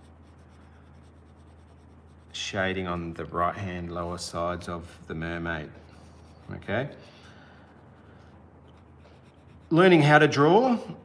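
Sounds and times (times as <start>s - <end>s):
pencil scratching on paper: 0.0s - 3.1s, 5.2s - 11.0s.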